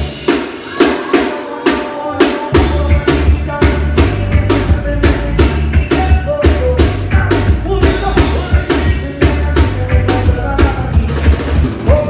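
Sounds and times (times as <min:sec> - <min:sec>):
bass: 0:00.0 - 0:01.0, 0:02.2 - 0:12.0
drum kit with snare hits: 0:00.0 - 0:12.0
guitar: 0:00.0 - 0:12.0.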